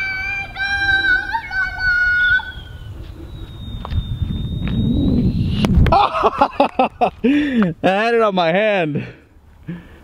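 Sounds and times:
child shouting high-pitched: 0.0 - 2.8
wind rumble on microphone: 0.0 - 7.9
microphone handling noise: 2.9 - 6.0.

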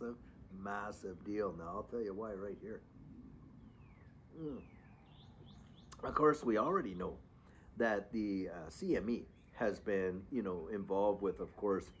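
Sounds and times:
faint low outdoor rumble: 0.0 - 12.0
man saying mm: 4.4 - 4.7.

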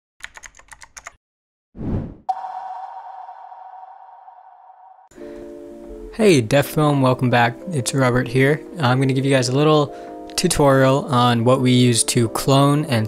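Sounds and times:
sharp hit with ringing tone: 2.3 - 5.3
low swell: 2.3 - 6.0
background music chords: 2.3 - 13.0.

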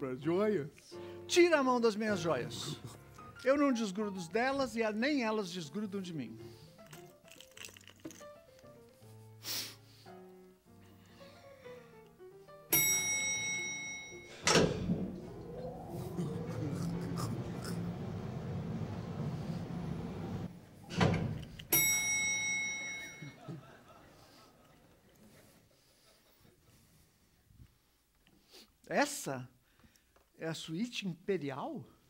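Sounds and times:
soft musical notes: 10.1 - 20.5
bright chime: 12.7 - 16.6, 21.7 - 23.4
dense rumbling noise: 14.6 - 20.5.

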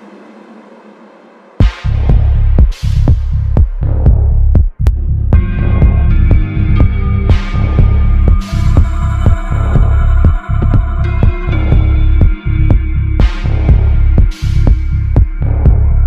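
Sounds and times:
deep throbbing bassline: 1.6 - 16.0
sustained synth tones: 5.4 - 16.0.

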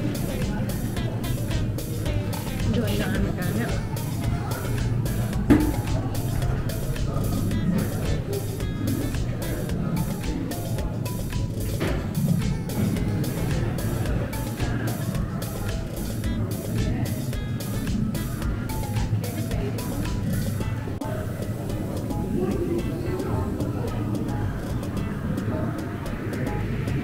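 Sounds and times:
music with quick even pulse: 0.0 - 27.0.

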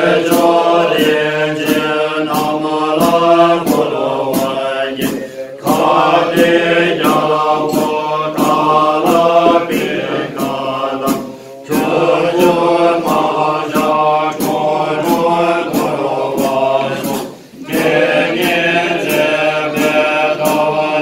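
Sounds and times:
men chanting in unison: 0.0 - 21.0
sharp ticks keeping time: 0.0 - 21.0.

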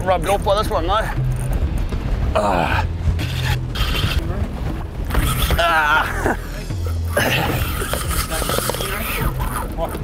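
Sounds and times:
boat engine rumble: 0.0 - 10.0
wind and water noise: 0.0 - 10.0.

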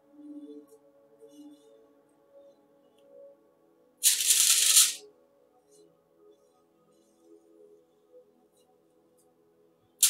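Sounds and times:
faint background music: 0.0 - 10.0
loud grainy rattling hiss: 4.0 - 5.0.

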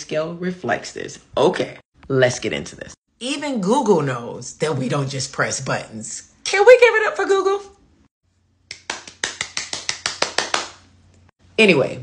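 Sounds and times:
person clapping hands: 8.7 - 10.8.

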